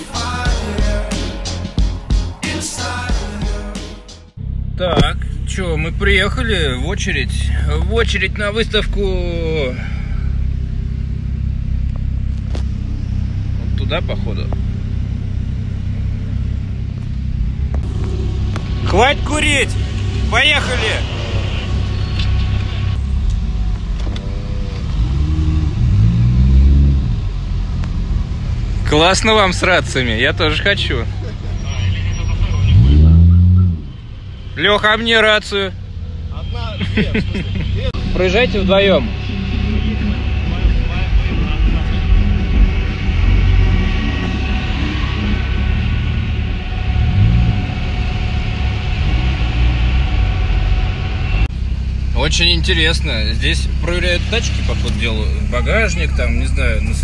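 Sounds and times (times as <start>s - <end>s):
car engines rumbling in traffic: 4.3s - 57.0s
engine revving: 4.4s - 57.0s.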